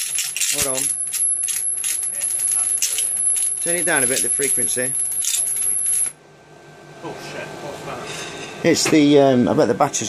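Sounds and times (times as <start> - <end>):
electric arc crackling: 0.0 - 6.2.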